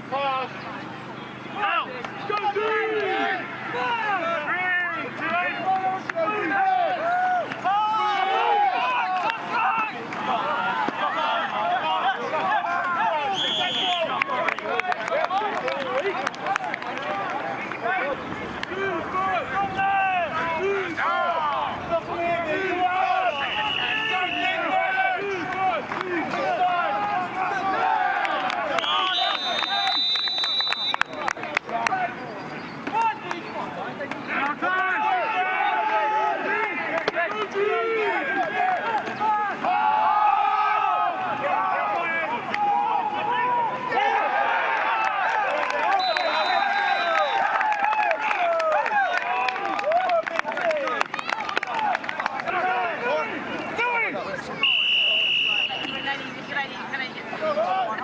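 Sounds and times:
crowd talking and shouting: 0.0s - 58.0s.

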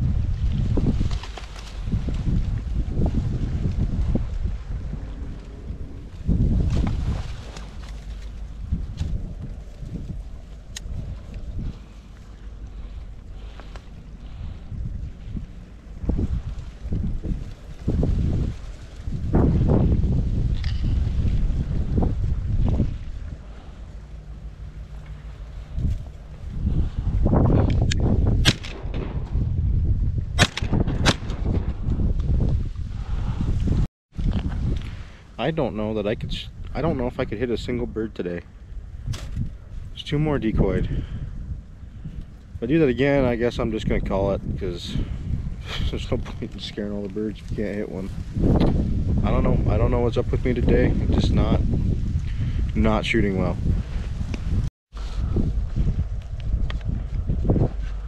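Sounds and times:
wind gusting over microphone: 0.0s - 58.0s.

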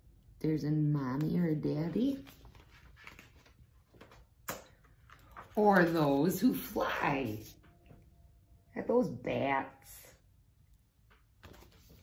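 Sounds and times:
low room noise: 0.0s - 12.0s
woman's voice: 0.4s - 2.4s, 5.6s - 7.6s, 8.7s - 10.2s
picture book rustling: 1.2s - 6.8s, 11.0s - 12.0s.

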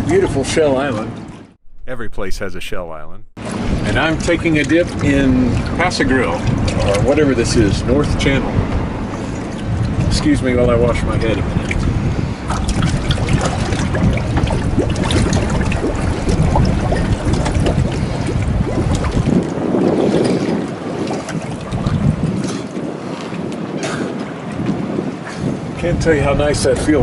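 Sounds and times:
water lapping around boat: 0.0s - 1.6s, 3.4s - 27.0s
wind buffeting microphone: 3.4s - 27.0s
small splashes: 11.6s - 24.2s.

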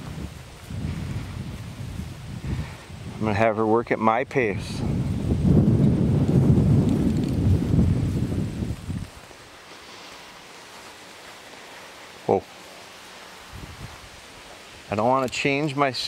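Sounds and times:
wind buffeting microphone: 0.0s - 9.6s, 13.4s - 14.4s.

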